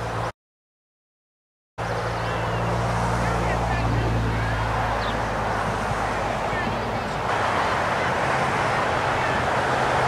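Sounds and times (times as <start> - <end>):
faint distant voices: 1.8 - 10.0
wind rumble on microphone: 2.6 - 10.0.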